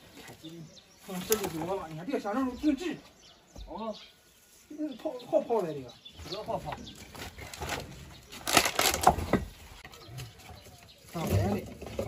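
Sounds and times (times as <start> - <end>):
scraping and crackling soil: 5.6 - 12.0.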